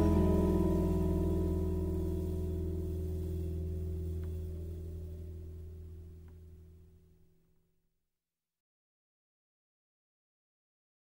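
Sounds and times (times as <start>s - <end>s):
strummed acoustic guitar chord: 0.0s - 6.7s.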